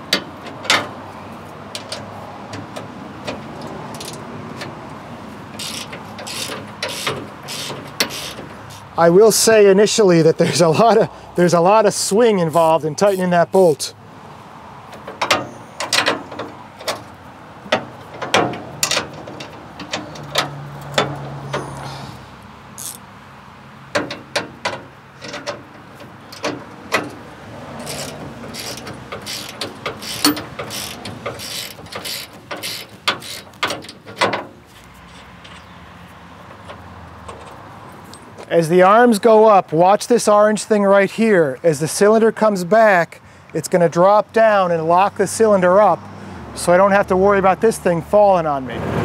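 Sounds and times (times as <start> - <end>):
ratchet wrench clicking: 5.6 - 8.9, 22.8 - 23.0, 27.8 - 34.0.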